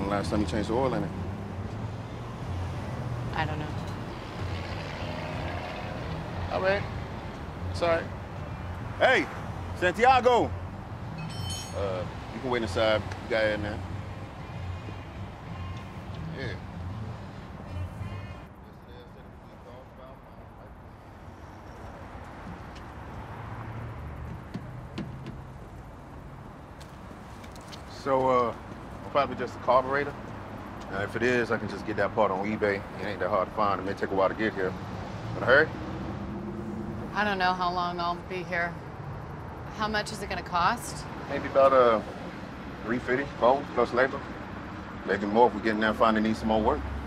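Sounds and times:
heavy vehicles passing: 0.0 - 47.0
road traffic rumble: 0.0 - 47.0.

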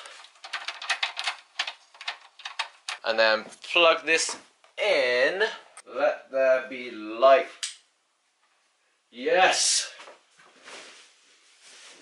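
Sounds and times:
venetian blind clicking and rattling: 0.0 - 3.2.

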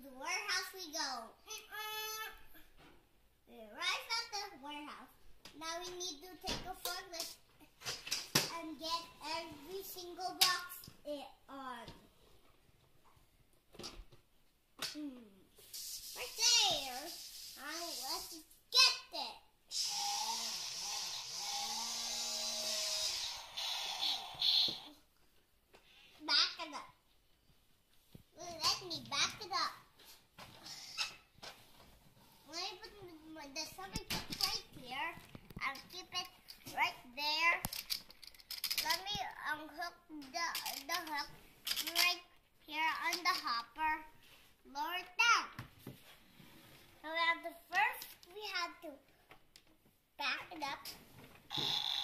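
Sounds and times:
small electric motor whirring: 19.7 - 24.8
child vocalizing: 19.7 - 25.0.

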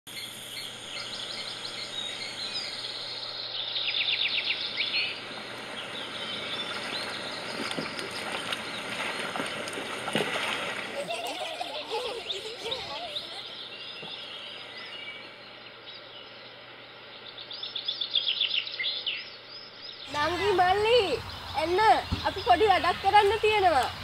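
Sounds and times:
birds chirping: 0.1 - 24.0.

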